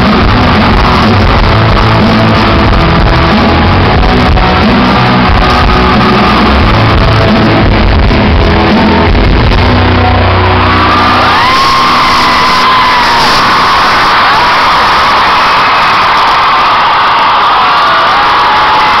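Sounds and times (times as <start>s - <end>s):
crowd cheering and screaming: 0.0s - 19.0s.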